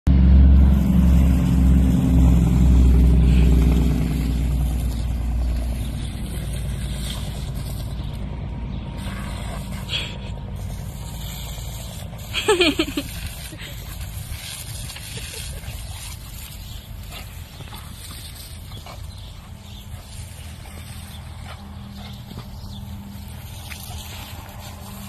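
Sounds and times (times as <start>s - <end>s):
low engine rumble: 0.1s - 25.0s.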